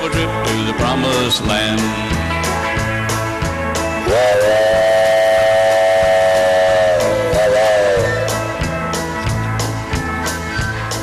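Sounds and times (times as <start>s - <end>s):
country band: 0.0s - 11.0s
person singing a whistle imitation: 4.0s - 8.4s.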